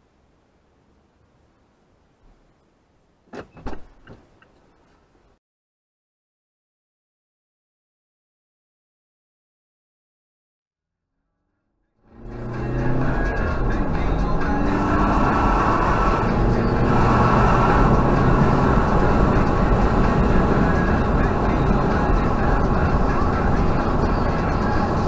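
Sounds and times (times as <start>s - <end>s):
car engine accelerating: 12.1s - 25.0s.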